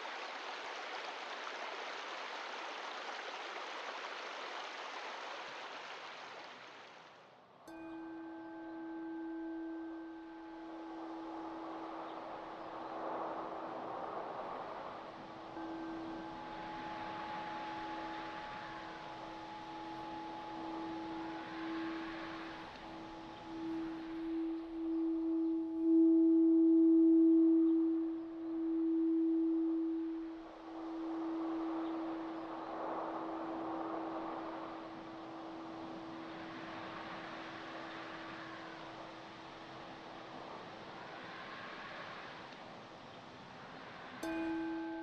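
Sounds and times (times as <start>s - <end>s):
wind gusts: 0.0s - 45.0s
crystal singing bowl ringing: 7.7s - 41.3s, 44.2s - 45.0s.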